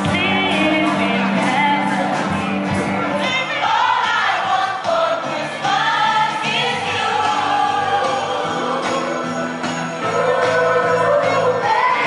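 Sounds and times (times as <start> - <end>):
young voices singing carol: 3.2 - 12.0.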